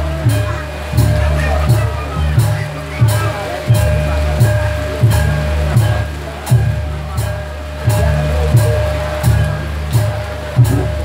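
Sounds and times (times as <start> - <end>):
gamelan music: 0.0 - 11.0.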